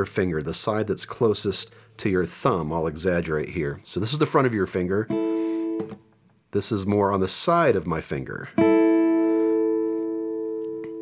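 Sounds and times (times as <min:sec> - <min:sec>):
guitar chord ringing: 0:05.1 - 0:06.0, 0:08.6 - 0:11.0.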